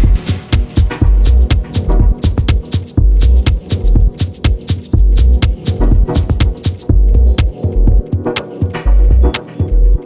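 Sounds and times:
dub techno music: 0.0 - 10.0.

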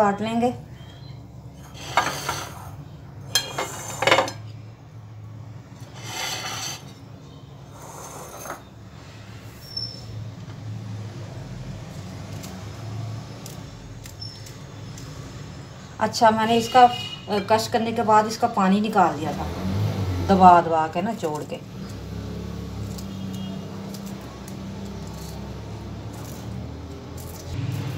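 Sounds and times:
scissors snipping chillies: 11.8 - 15.2, 21.2 - 27.9.

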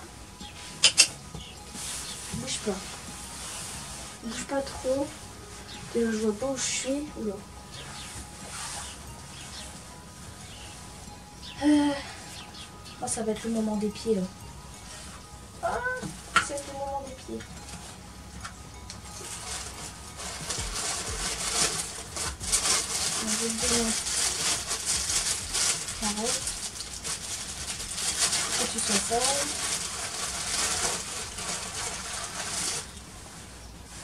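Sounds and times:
brush scratching over coat: 1.6 - 7.0, 7.7 - 10.7, 19.1 - 34.0.

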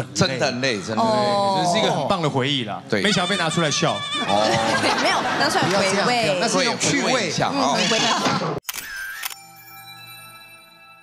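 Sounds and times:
bell-like chime tones: 8.9 - 11.0.

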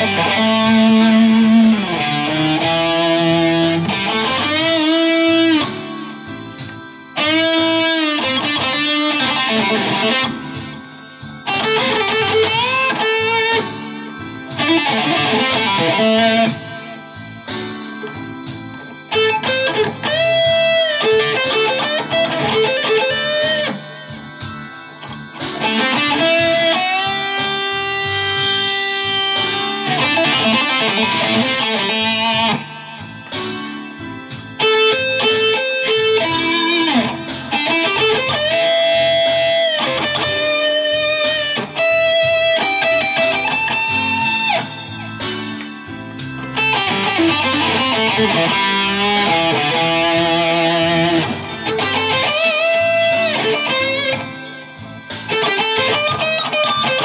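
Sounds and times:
electric guitar blues solo: 0.0 - 57.0.

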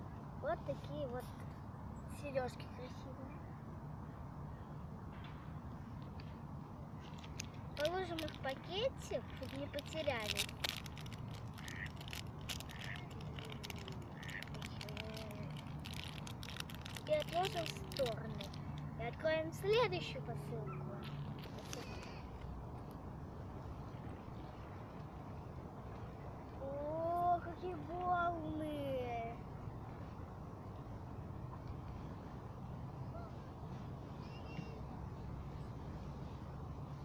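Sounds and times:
low outdoor rumble: 0.0 - 37.0
girl's voice: 0.4 - 1.5, 2.1 - 3.4, 7.8 - 10.5, 14.7 - 15.6, 17.0 - 22.3, 26.6 - 29.4
earrings clicking and crinkling: 7.0 - 18.9, 21.0 - 22.5.

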